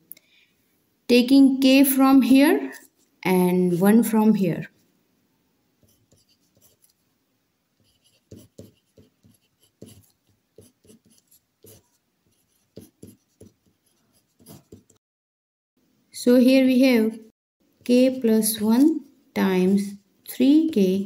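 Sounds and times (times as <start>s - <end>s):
pen scratching on paper: 5.8s - 7.0s, 7.8s - 15.0s.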